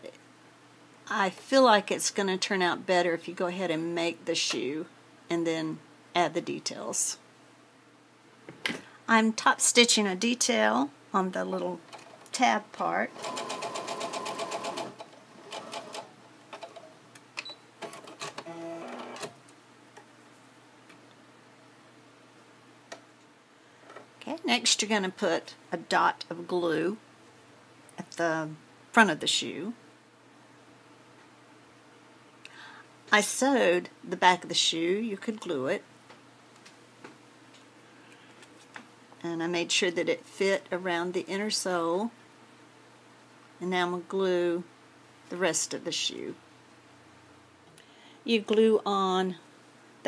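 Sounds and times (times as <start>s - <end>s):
sewing machine stitching: 13.1s - 16.9s, 17.8s - 19.4s.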